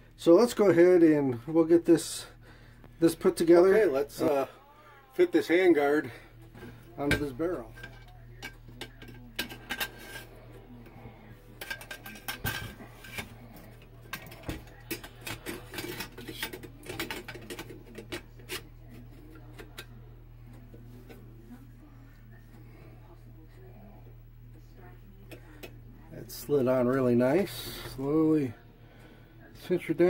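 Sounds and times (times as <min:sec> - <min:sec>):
metallic clicks and scrapes: 0:07.7 - 0:10.4, 0:11.6 - 0:20.0.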